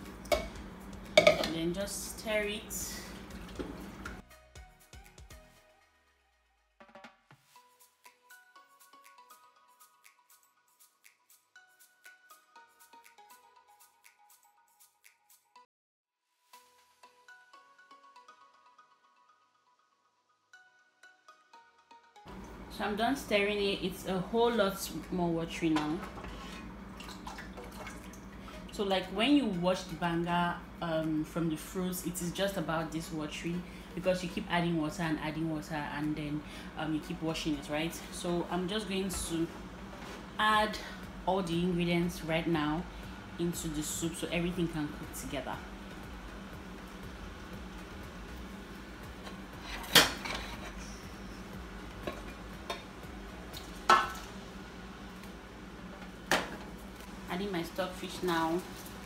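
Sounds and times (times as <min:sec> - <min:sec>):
cookware clanking on stockpot: 0:01.2 - 0:01.6
soup sloshing and dripping: 0:26.1 - 0:28.7
soft splashes: 0:27.0 - 0:28.3.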